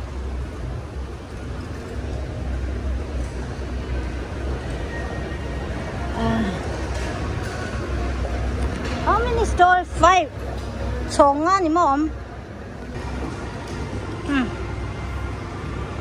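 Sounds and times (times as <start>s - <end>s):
busy shopping mall noise: 0.0s - 16.0s.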